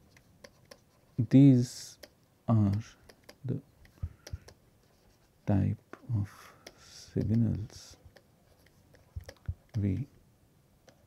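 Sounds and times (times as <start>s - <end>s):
stylus tapping on tablet screen: 2.0s - 4.6s, 6.6s - 10.1s.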